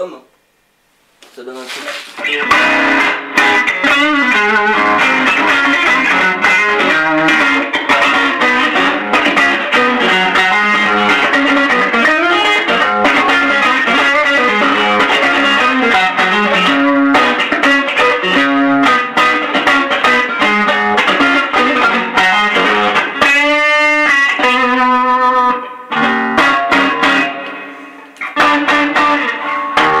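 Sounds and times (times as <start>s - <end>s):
overdriven electric guitar lead: 2.1s - 30.0s.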